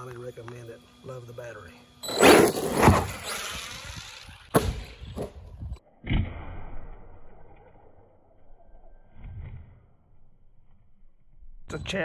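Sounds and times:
rc truck motor whine: 0.0 - 5.8
rc truck landing thud: 2.0 - 6.5.

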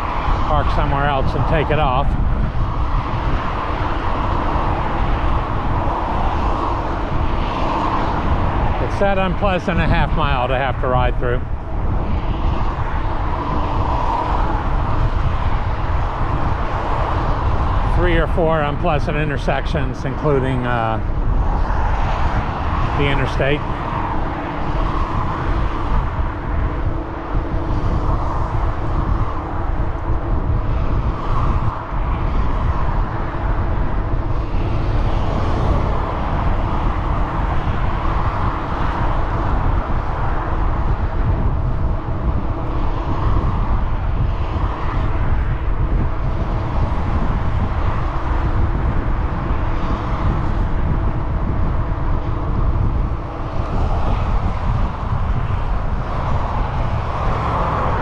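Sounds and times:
freeway traffic rushing: 0.0 - 58.0
wind rumbling on microphone: 0.0 - 58.0.

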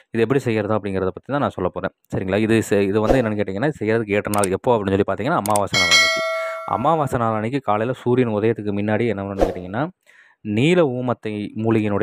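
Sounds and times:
bright bell chime: 5.7 - 7.2.

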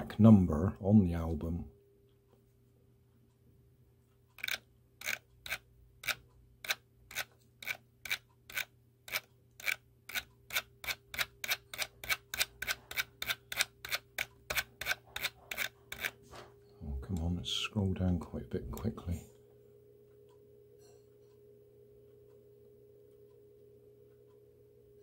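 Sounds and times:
faint steady hum: 0.0 - 25.0
computer mouse clicking: 4.3 - 16.2.

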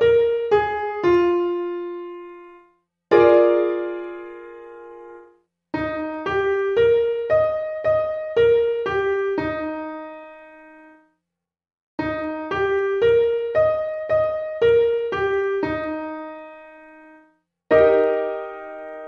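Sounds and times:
piano playing an arpeggio: 0.0 - 11.0, 12.0 - 19.0.

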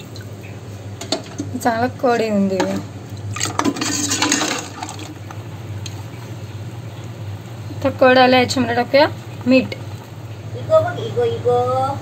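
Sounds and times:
liquid sloshing: 2.6 - 6.3.

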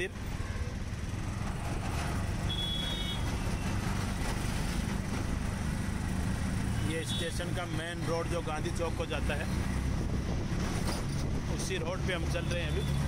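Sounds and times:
road and traffic noise: 0.0 - 13.0.

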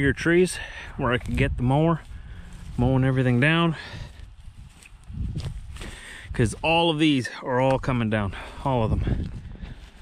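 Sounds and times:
footsteps on dry grass: 0.0 - 10.0.

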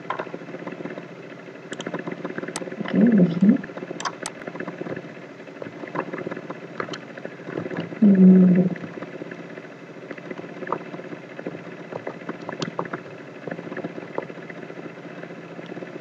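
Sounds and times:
low background hum: 0.0 - 16.0
person humming: 2.8 - 3.6, 8.0 - 8.9.

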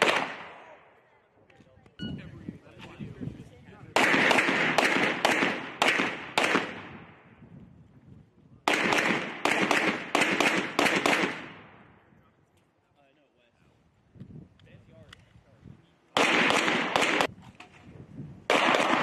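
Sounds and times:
pistol shots with ringing echo: 0.0 - 1.0, 3.9 - 7.3, 8.6 - 11.9, 16.2 - 17.3, 18.5 - 19.0.

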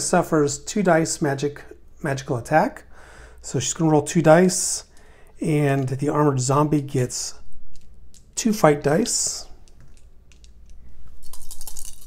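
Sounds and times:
plastic dice clicking in hand: 7.7 - 8.4, 9.6 - 10.8.

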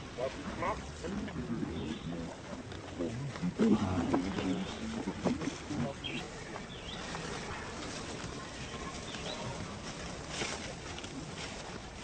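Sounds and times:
macaques grunting: 0.5 - 6.3.

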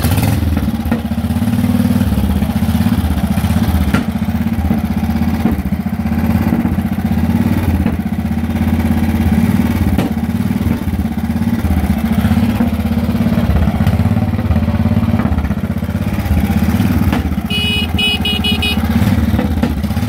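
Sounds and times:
single-cylinder motorcycle engine idling: 0.0 - 20.0.

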